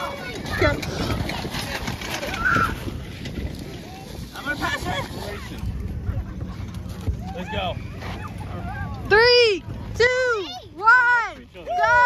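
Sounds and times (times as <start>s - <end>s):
steady low rumble: 0.0s - 12.0s
voices calling and chattering: 0.0s - 12.0s.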